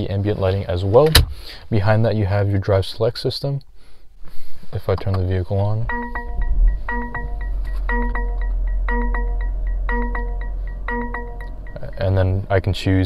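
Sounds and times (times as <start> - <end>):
car warning chime: 5.9 - 12.9
car engine starting and idling: 5.9 - 13.0.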